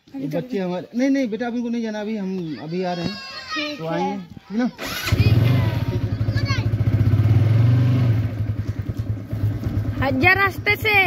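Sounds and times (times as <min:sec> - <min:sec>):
motorcycle engine running: 0:04.8 - 0:11.0.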